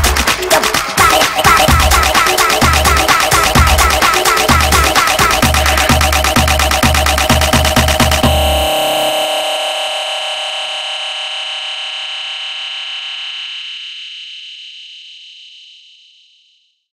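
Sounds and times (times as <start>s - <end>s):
sustained synthesizer chord: 1.7s - 13.4s.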